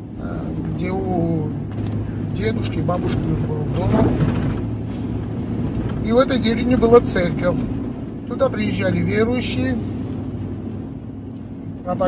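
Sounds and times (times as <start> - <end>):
engine and road noise in cabin: 0.0 - 12.0.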